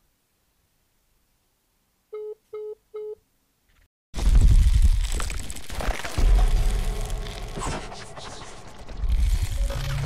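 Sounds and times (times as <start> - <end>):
telephone call-ended beeps: 2.1 - 3.2.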